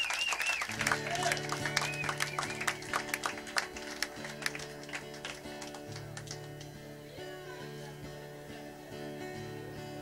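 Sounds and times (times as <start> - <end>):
hand claps: 0.0 - 6.8.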